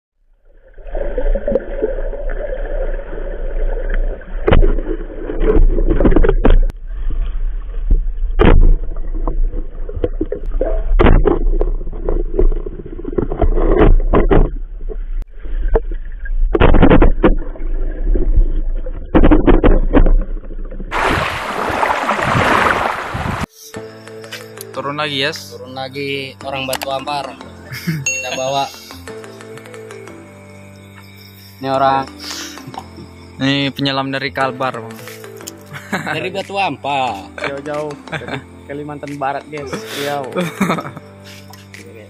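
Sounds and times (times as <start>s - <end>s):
underwater low hum: 0.3s - 22.4s
camera knocks and bumps: 13.2s - 14.6s, 16.6s - 17.4s.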